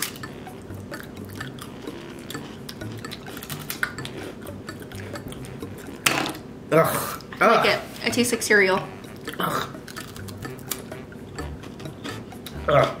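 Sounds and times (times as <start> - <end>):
people chewing crisp rice cakes: 0.0 - 6.0, 9.2 - 13.0.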